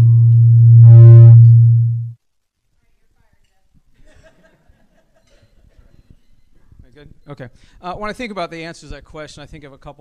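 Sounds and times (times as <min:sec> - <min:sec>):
faint higher tones: 0:00.0 - 0:02.2
low electrical hum: 0:00.0 - 0:10.0.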